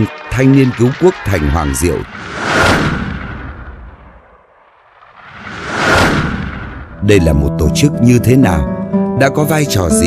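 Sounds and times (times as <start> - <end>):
boom sound effect: 2.1 - 4.4, 5.1 - 7.0.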